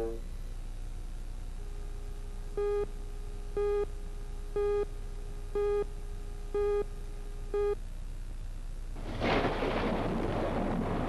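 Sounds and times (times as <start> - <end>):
low steady hum: 0.0 - 11.0
short countdown beeps: 5.6 - 5.9, 6.6 - 6.9.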